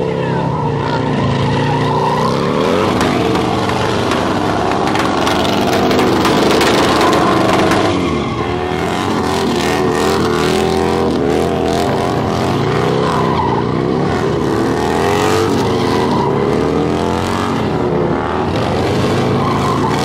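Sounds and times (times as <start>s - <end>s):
motorcycle engines revving: 0.0s - 20.0s
tyres spinning on asphalt: 0.0s - 20.0s.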